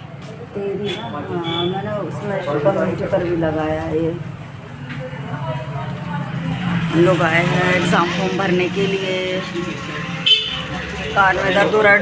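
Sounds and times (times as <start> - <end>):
low traffic rumble: 0.0 - 12.0
high-pitched vehicle horn beep: 0.8 - 1.9, 9.0 - 11.8.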